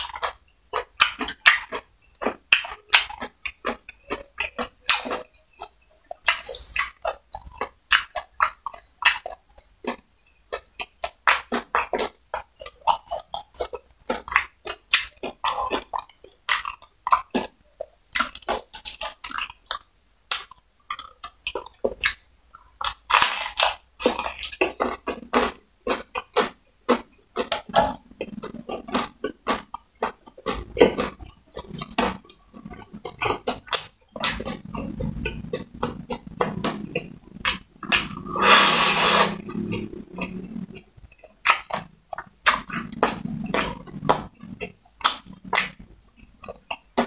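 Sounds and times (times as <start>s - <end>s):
crunchy chewing of fried chicken: 0.0s - 47.0s
wet mouth clicks: 0.0s - 47.0s
low throat sounds: 27.0s - 47.0s.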